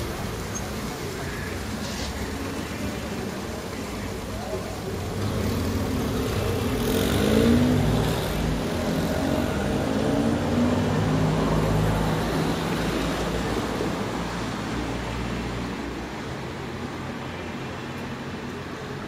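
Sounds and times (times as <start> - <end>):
people talking: 0.0 - 7.9
car traffic passing: 0.0 - 19.0.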